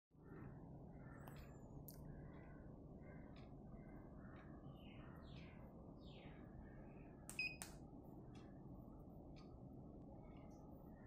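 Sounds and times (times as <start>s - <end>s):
low steady hum: 0.2s - 11.0s.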